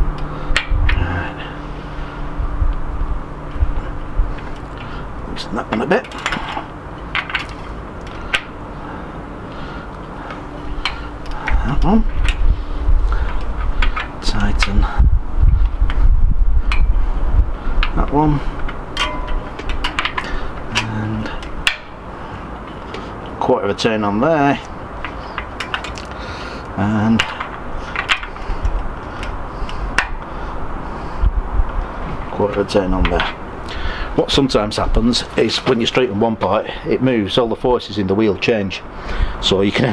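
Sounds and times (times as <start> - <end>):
steady low rumble: 0.0 - 39.9.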